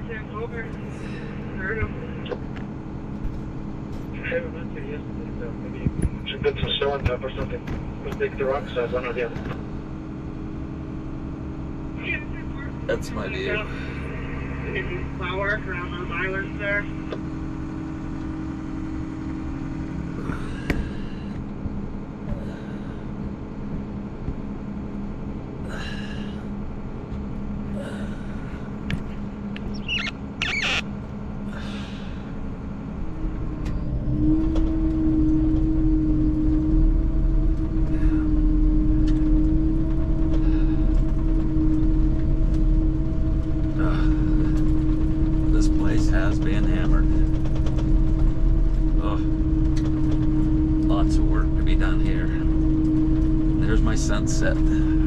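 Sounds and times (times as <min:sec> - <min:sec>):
engine droning: 0:00.0 - 0:55.0.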